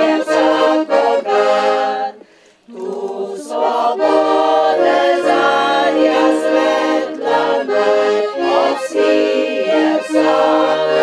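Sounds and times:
accordion: 0:00.0 - 0:11.0
women's choir singing: 0:00.0 - 0:11.0.

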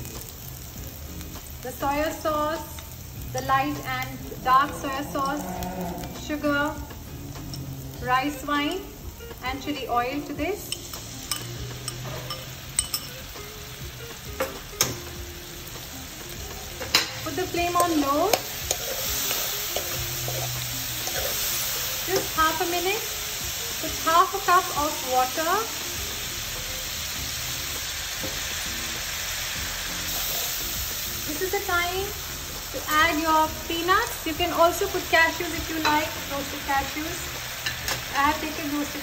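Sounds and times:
sauce sizzling in a wok: 0:00.0 - 0:39.0.

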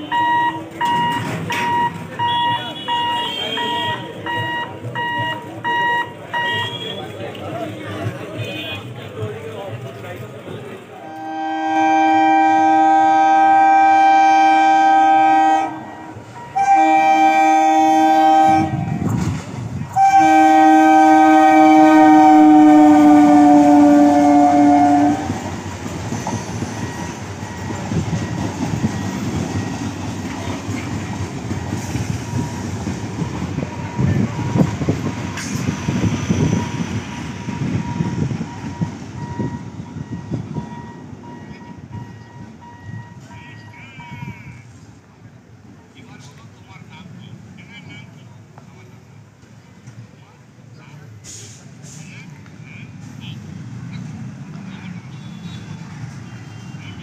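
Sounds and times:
train coaches rumbling past: 0:00.0 - 0:57.0
train horn blasts: 0:11.0 - 0:19.1, 0:19.9 - 0:25.5
wheels clacking over rail joints: 0:24.8 - 0:36.1.

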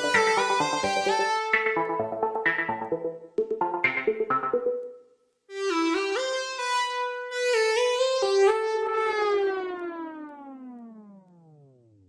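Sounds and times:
synthesizer note sliding down: 0:07.6 - 0:11.9.

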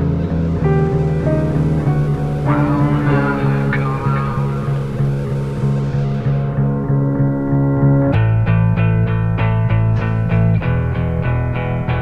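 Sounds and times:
repeating low bass note: 0:00.0 - 0:12.0.

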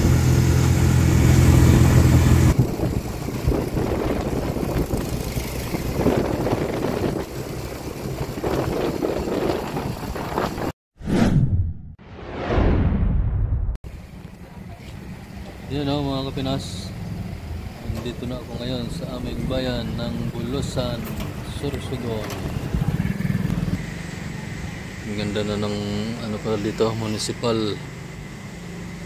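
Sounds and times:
small motorcycle passing by: 0:00.0 - 0:10.6, 0:21.5 - 0:26.2
whoosh sound effects: 0:11.0 - 0:13.8.

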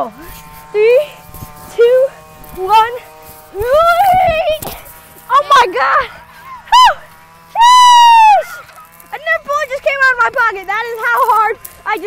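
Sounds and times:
boy's high-pitched yell: 0:06.7 - 0:08.7.

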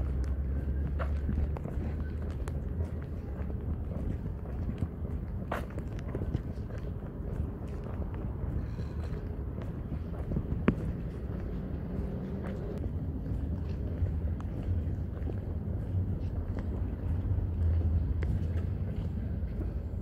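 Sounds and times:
wind rumble on microphone: 0:00.0 - 0:20.0.

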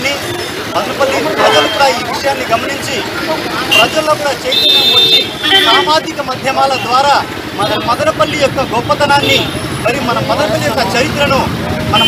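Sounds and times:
man speaking into a microphone: 0:00.0 - 0:12.0
street traffic: 0:00.0 - 0:12.0
vehicle horn: 0:03.7 - 0:05.9.

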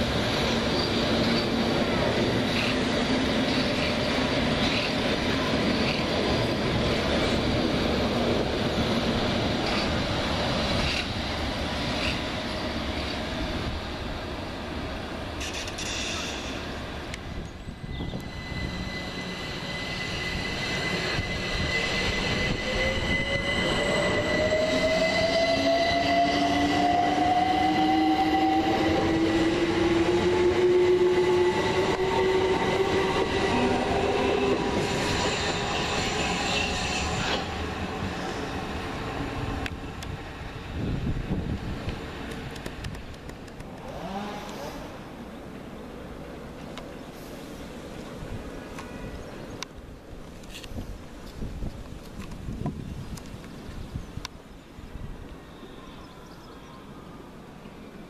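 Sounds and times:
underground train pulling away: 0:00.0 - 0:43.0
wheel and rail noise: 0:00.0 - 0:58.0.

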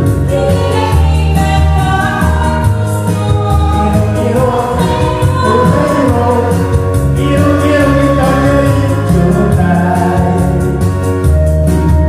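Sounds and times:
woman singing into microphone: 0:00.0 - 0:08.7
backing track with bass line: 0:00.0 - 0:12.0
man singing into microphone: 0:03.0 - 0:11.2.

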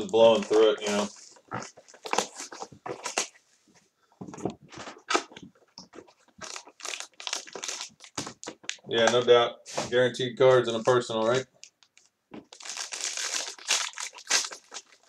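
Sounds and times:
wrapping crinkling: 0:00.0 - 0:03.4, 0:04.9 - 0:08.8, 0:10.7 - 0:15.0.

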